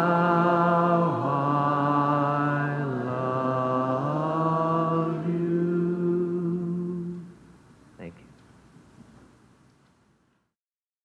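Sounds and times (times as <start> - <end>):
man singing hymn notes: 0.0 - 7.5.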